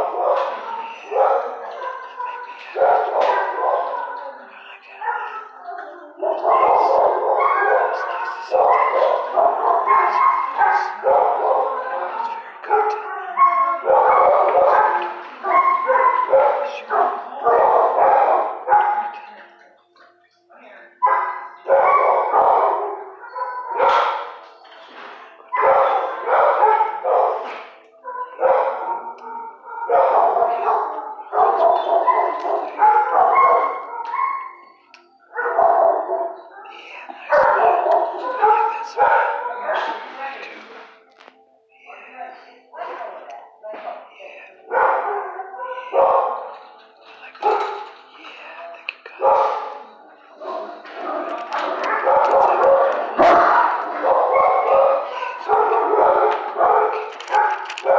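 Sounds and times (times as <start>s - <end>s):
dogs barking and yelping: 0.0s - 19.5s, 21.0s - 41.0s, 42.8s - 57.9s.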